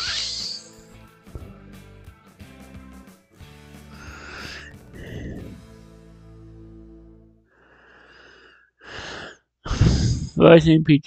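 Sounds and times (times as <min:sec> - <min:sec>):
breathy exhale into microphone: 0:03.9 - 0:05.7.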